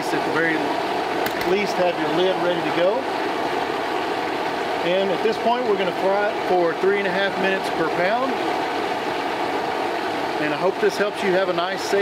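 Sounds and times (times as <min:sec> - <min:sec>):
gas burner running: 0:00.0 - 0:12.0.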